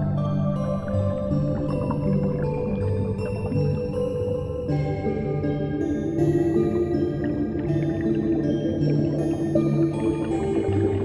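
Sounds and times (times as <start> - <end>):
slow calm piano music: 0.0 - 11.0.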